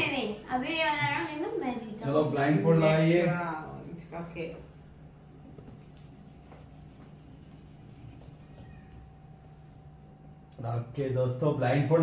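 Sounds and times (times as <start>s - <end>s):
low steady hum: 0.0s - 12.0s
hand wiping whiteboard squeaking: 5.7s - 9.2s.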